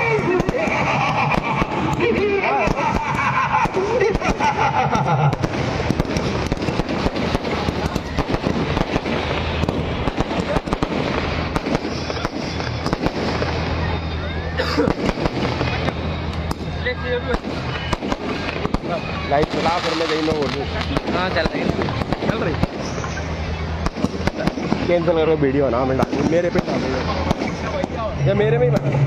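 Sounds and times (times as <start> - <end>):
fireworks crackling and banging: 0.0 - 29.0.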